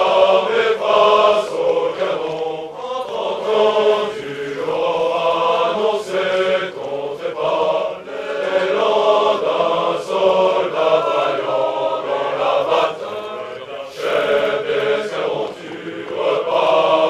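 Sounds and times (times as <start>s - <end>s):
male chorus singing: 0.0s - 17.0s.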